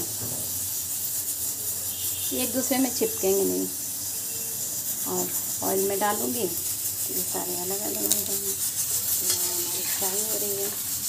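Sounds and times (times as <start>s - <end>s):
hot oil sizzling: 0.0s - 11.0s.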